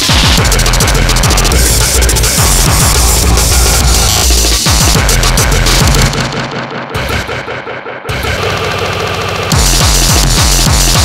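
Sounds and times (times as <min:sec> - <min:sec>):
choppy repeating electronic sound: 0:00.0 - 0:11.0.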